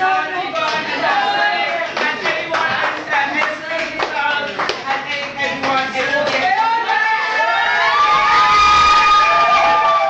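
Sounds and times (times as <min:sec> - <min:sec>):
people clapping: 0:00.0 - 0:10.0.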